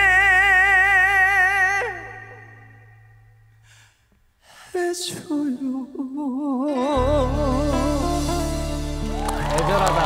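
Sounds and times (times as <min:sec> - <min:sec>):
man singing with vibrato: 0:00.0 - 0:03.4, 0:04.4 - 0:09.0
sustained backing chords: 0:07.0 - 0:10.0.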